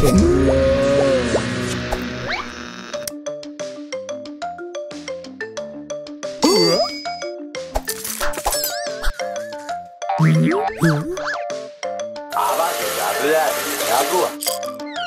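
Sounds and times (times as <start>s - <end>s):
boing-like wobbling glide: 0.0s - 2.4s
cartoon music with plucked notes: 3.2s - 15.0s
nervous wordless character voices: 12.3s - 14.4s.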